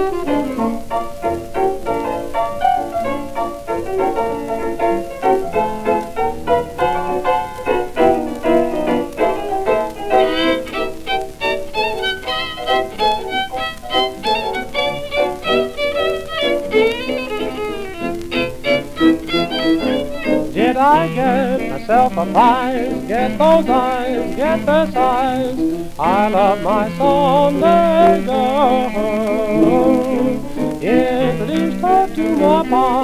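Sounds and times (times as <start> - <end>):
dance orchestra playing: 9.5 - 21.4.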